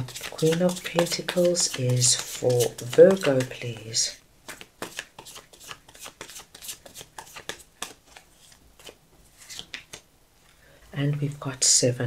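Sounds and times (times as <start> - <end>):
cards being shuffled: 0.0 - 10.1.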